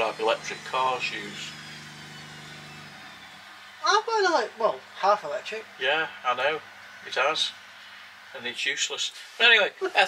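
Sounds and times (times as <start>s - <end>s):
washing machine humming: 0.0s - 10.0s.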